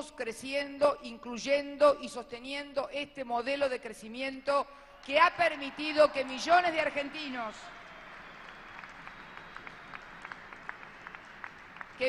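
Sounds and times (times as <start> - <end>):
audience applauding: 5.0 - 12.0.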